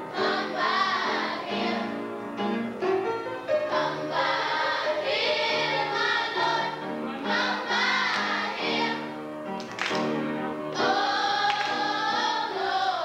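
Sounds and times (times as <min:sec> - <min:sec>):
children's choir singing: 0:00.0 - 0:02.4, 0:03.4 - 0:09.2, 0:10.7 - 0:13.0.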